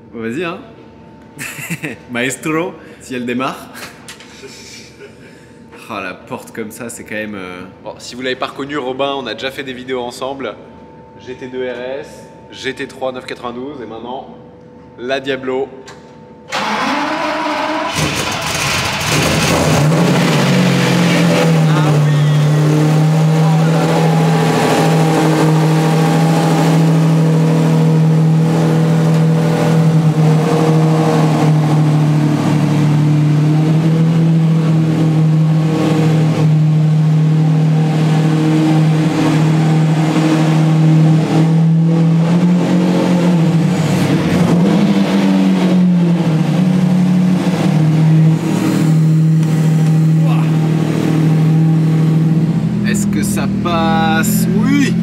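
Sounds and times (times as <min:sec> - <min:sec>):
car engine starting and idling: 0:16.5 - 0:55.0.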